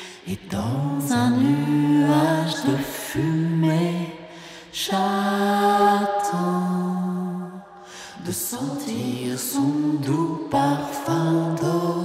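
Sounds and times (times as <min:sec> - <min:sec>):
pop song: 0:00.0 - 0:12.0.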